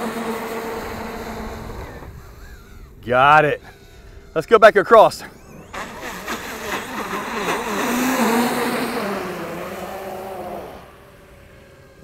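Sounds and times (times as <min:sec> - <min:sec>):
electric motor whining: 0:00.0 - 0:12.0.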